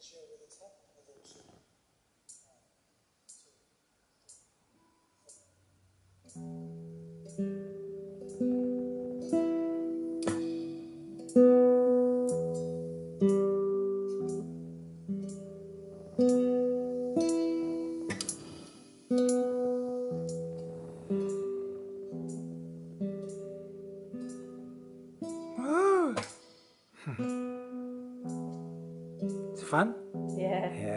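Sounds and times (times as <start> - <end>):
classical guitar arpeggios: 6.4 - 26.2, 27.2 - 30.9.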